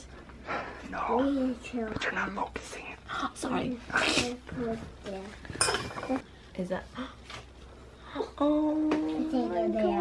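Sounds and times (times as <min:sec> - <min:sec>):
metal fork clinking on plate: 0:05.6 - 0:06.2.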